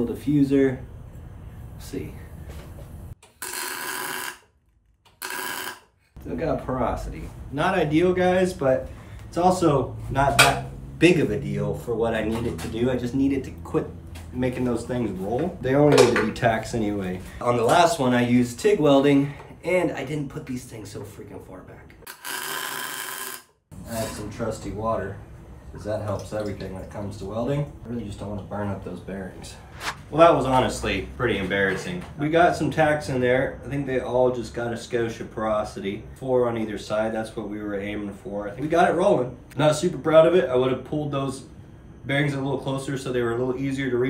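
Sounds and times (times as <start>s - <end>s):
welding arc bursts: 3.2s - 4.5s, 5.1s - 5.9s, 22.1s - 23.5s.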